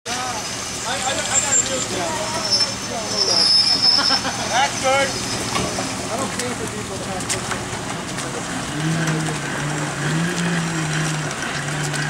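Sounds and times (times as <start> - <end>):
people talking: 0.1 - 10.9
people laughing: 3.7 - 5.1.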